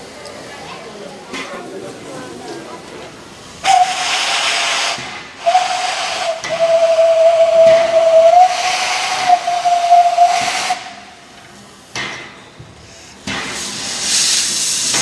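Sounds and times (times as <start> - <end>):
steam hissing: 2.8 - 15.0
steam whistle blasts: 3.6 - 11.1.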